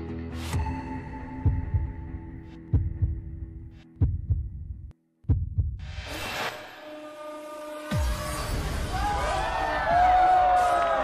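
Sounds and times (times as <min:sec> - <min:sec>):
deep bass kicks: 0:01.4 - 0:05.8.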